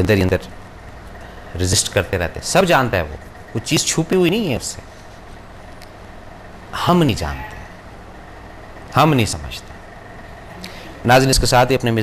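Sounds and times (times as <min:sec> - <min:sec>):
low background hum: 0:00.0 - 0:12.0
man speaking: 0:01.6 - 0:04.8, 0:06.8 - 0:07.7, 0:08.9 - 0:09.7, 0:11.0 - 0:12.0.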